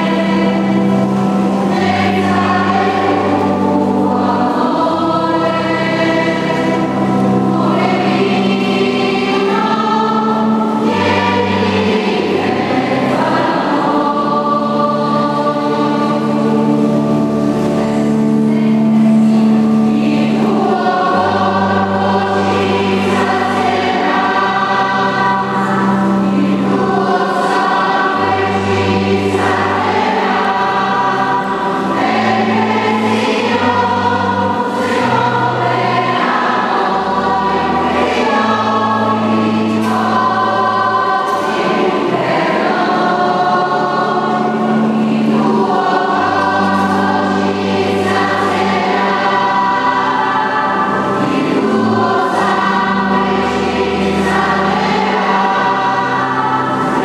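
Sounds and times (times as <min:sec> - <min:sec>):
church choir singing a hymn: 0:00.0 - 0:57.0
sustained bass accompaniment: 0:00.0 - 0:57.0.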